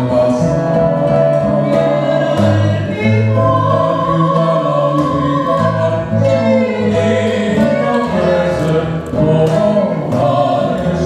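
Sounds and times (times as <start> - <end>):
acoustic guitar: 0.0 - 11.0
woman and man singing: 0.0 - 11.0.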